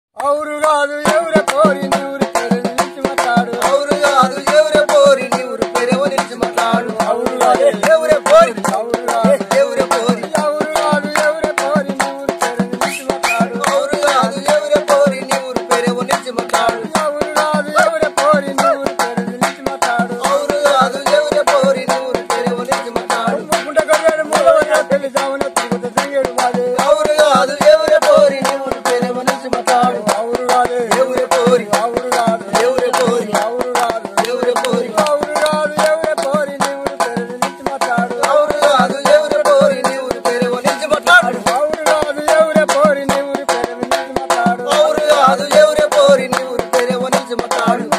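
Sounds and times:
sharp hand claps: 0.2 - 25.3, 26.0 - 40.0, 40.6 - 47.9
men singing folk song: 0.2 - 47.9.

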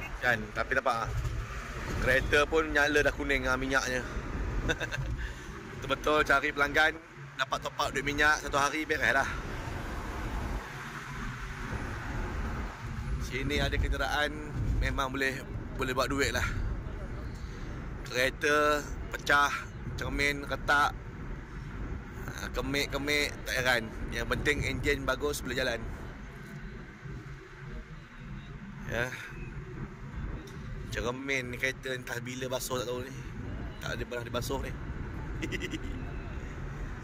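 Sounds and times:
car road and engine noise: 0.0 - 37.0.

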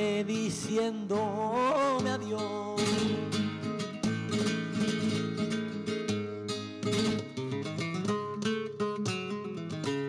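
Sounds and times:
flamenco guitar playing: 0.0 - 10.0.

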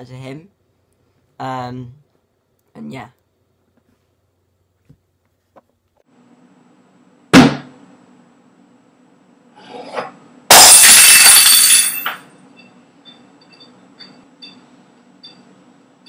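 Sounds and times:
loud crash: 10.5 - 12.1.

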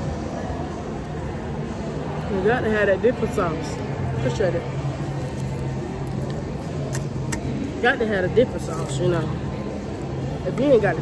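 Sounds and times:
indoor public space hum: 0.0 - 11.0.

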